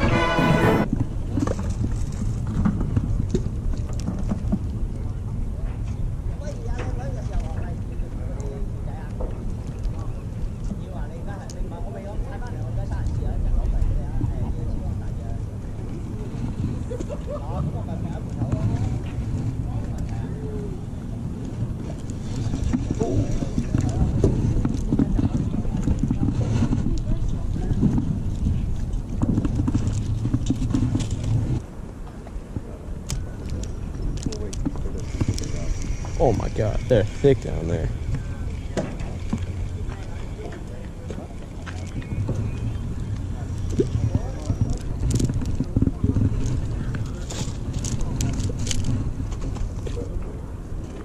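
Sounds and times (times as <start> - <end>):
people talking in background: 0.0 - 51.0
steady low rumble: 0.0 - 51.0.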